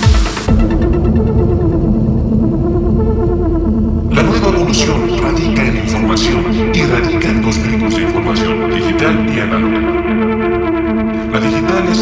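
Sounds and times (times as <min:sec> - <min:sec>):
muffled electronic dance music: 0:00.0 - 0:01.6, 0:04.1 - 0:12.0.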